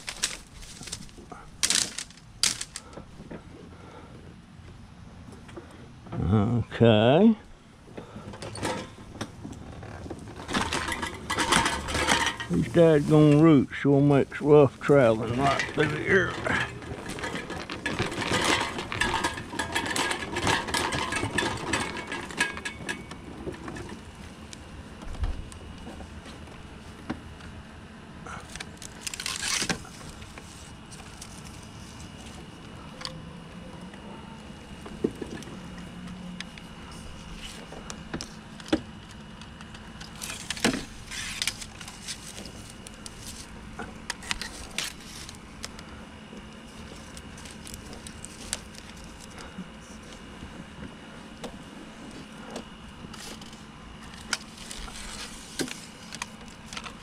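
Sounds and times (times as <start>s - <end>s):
faint motor whine: 0.0s - 57.0s
mobility scooter rattling: 8.1s - 13.5s, 14.4s - 24.3s.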